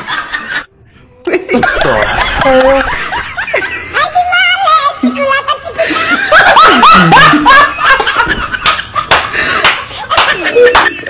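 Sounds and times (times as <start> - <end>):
person laughing in high whoops: 6.6 - 7.6.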